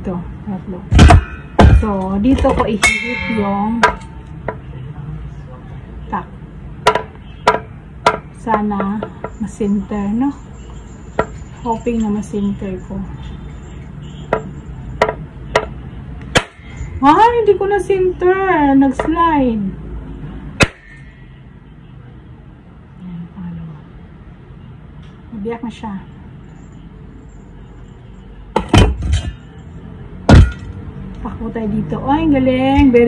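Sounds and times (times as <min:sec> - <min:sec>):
knife striking coconut shell: 0:00.9 - 0:04.1, 0:16.4 - 0:16.7, 0:20.6 - 0:21.1, 0:30.3 - 0:30.6.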